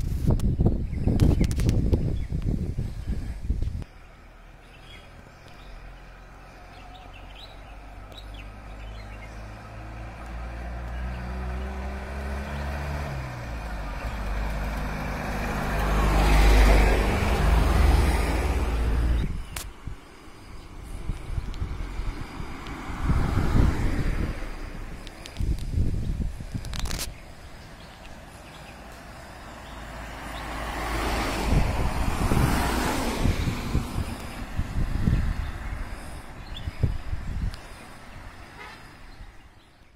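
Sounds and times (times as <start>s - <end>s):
tyre noise on road: 0.0s - 39.9s
truck engine passing by: 3.9s - 19.5s, 20.4s - 39.5s.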